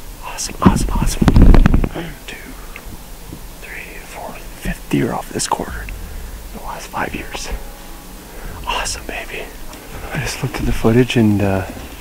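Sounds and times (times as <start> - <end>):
faint background hiss: 0.0 - 12.0
man whispering excitedly: 0.2 - 2.8, 3.6 - 7.7, 8.5 - 10.9.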